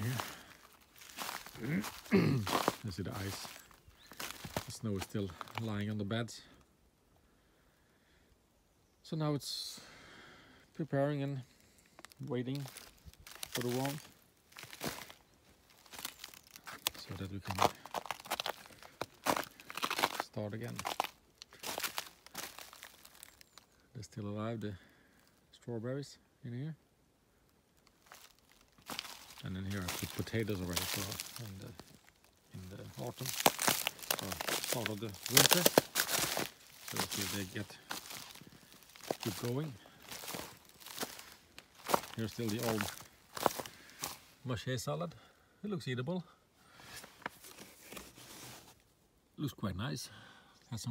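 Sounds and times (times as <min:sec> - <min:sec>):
footsteps crunching on dry leaves: 0:00.0 - 0:06.0, 0:11.8 - 0:23.7, 0:27.8 - 0:44.4.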